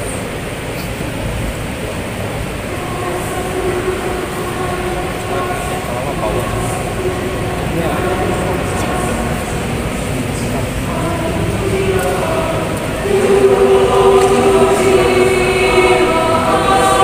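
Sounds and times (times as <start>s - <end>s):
choir singing held chords: 0.0s - 17.0s
low rumble of large hall: 0.0s - 17.0s.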